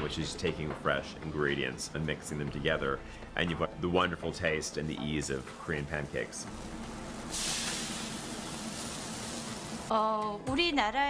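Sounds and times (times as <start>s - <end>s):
pancake sizzling in oil: 6.5s - 9.9s.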